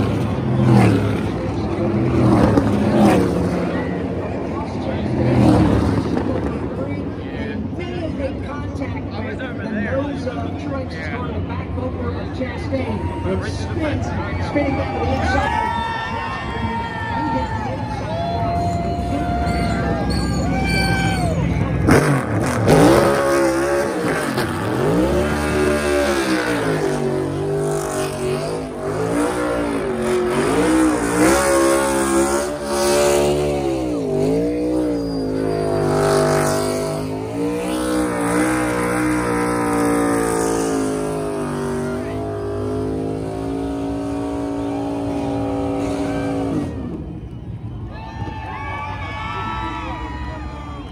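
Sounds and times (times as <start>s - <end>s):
tires spinning on track: 0.0s - 8.4s, 12.8s - 50.9s
race car engine revving: 0.0s - 9.6s, 17.6s - 47.8s.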